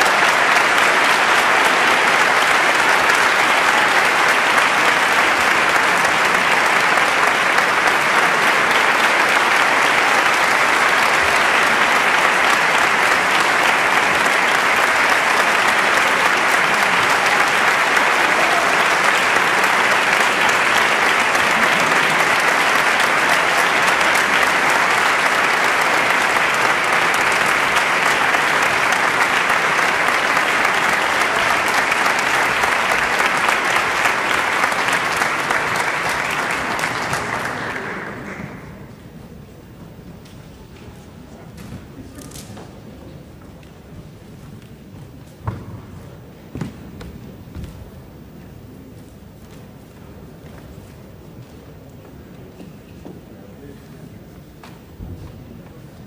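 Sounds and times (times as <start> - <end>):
audience applauding: 0.0 - 52.5.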